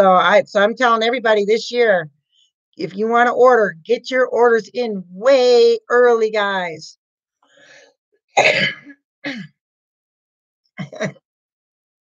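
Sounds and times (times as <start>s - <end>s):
woman coughing: 8.4s - 9.6s, 10.8s - 11.2s.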